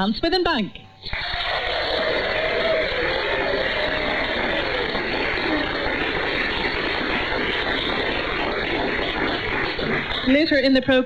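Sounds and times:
audience clapping over radio: 1.1 - 11.0.

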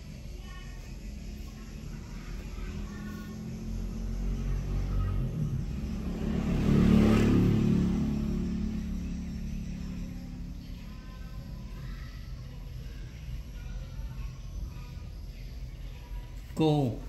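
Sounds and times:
vehicle passing by: 0.8 - 15.2.

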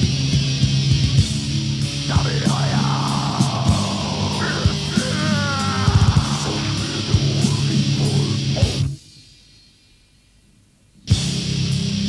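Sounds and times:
death metal band playing: 0.0 - 9.0
harsh vocal: 2.0 - 8.9.

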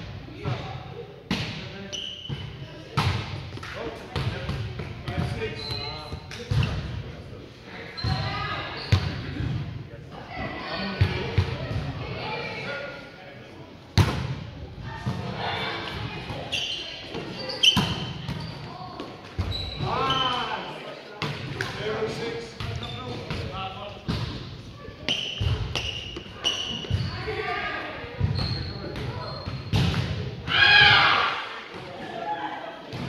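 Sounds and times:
sneakers squeaking on floor: 1.8 - 3.1, 4.2 - 6.9, 7.9 - 9.5, 16.2 - 21.4, 22.5 - 24.4, 25.0 - 30.1.

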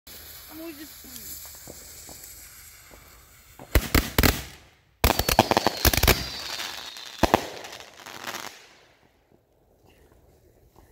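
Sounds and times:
fuse hissing: 0.1 - 3.8
firework cracks and bangs: 0.1 - 9.0
faint firework whistle: 5.0 - 7.7.

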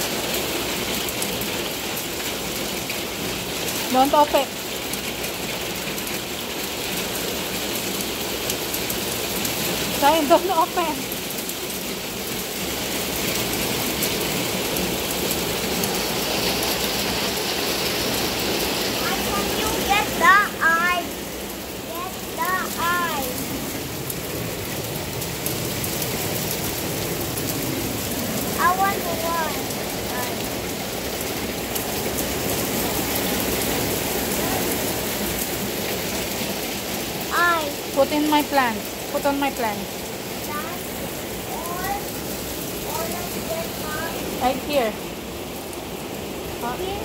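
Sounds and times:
hail and rain on wooden deck: 0.0 - 47.0.

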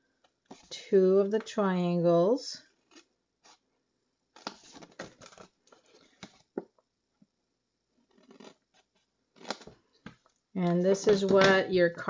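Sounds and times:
paper rustling: 4.4 - 6.4.

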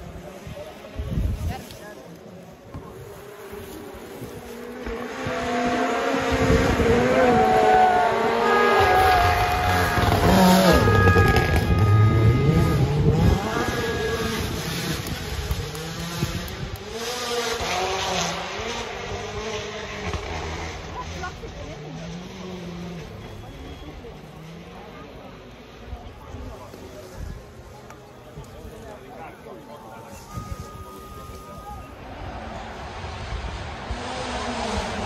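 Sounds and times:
rally car engine at high revs: 2.5 - 27.6, 30.2 - 35.0.

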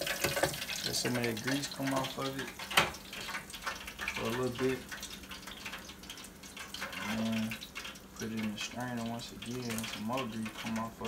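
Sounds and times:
hot oil sizzling and crackling: 0.0 - 11.0.

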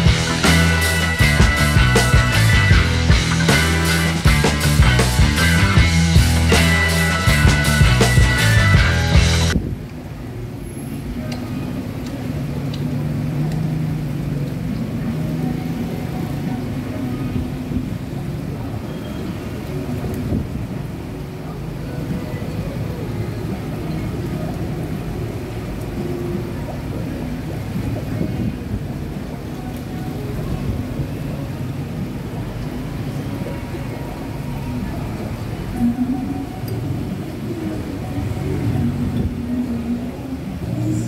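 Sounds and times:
faint voices: 0.0 - 41.0
low traffic rumble: 0.0 - 41.0.

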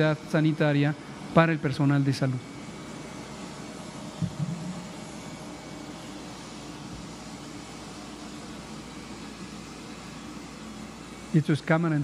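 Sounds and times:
faint hum: 4.1 - 7.0.

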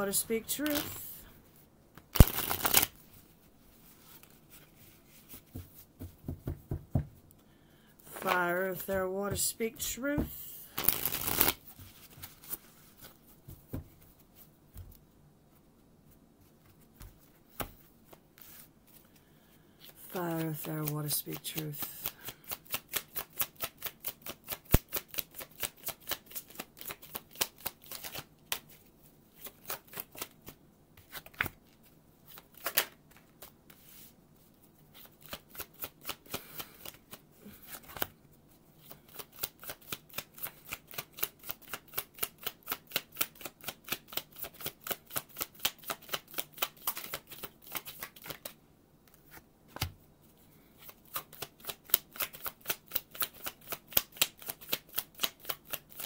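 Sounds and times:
cards being shuffled: 0.1 - 1.1, 2.0 - 5.8, 10.8 - 14.0, 19.8 - 34.1, 34.9 - 38.2, 38.8 - 49.9, 50.8 - 56.0.

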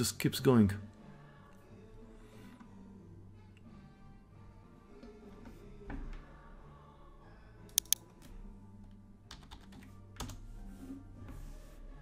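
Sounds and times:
computer keyboard keys clicking: 9.3 - 10.4.

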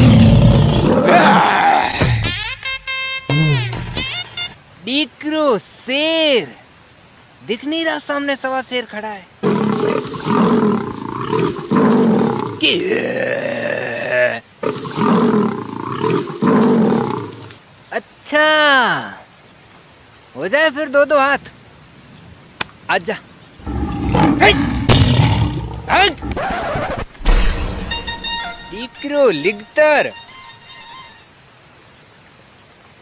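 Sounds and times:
lion roaring: 0.0 - 2.0, 9.4 - 17.4, 23.6 - 27.0.

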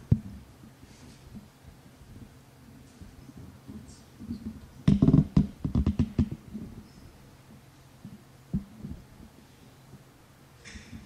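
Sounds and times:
microphone handling thumps: 0.0 - 0.5, 3.0 - 6.9, 8.0 - 9.3
faint steady hum: 0.0 - 11.0.

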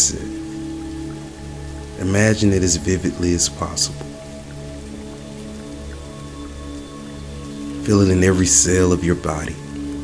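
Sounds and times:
rain hiss: 0.0 - 10.0
slow ambient music: 0.0 - 10.0.

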